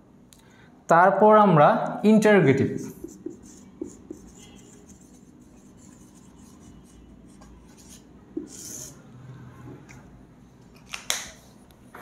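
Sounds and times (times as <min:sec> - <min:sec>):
marker scratching on whiteboard: 0:02.6 - 0:09.1
marker tapping on whiteboard: 0:02.9 - 0:06.7.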